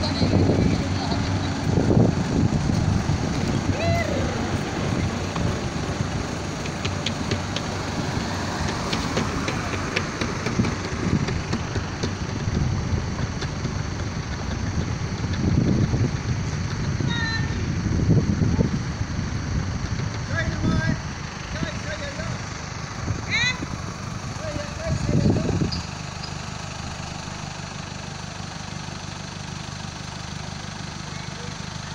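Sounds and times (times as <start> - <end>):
indistinct voices: 0.0 - 12.1, 20.1 - 25.9
passing traffic rumble: 0.0 - 31.9.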